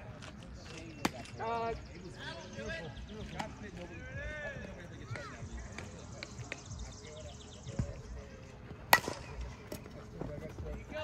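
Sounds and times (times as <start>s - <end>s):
players shouting and chatting: 0.0s - 11.0s.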